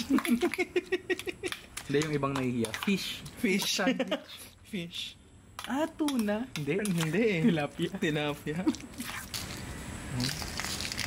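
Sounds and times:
spoon stirring wet salad: 0:01.2 - 0:03.8, 0:05.6 - 0:07.9.

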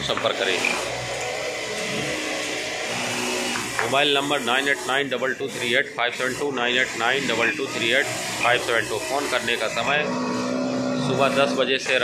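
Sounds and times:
sewing machines whirring: 0:00.0 - 0:12.0.

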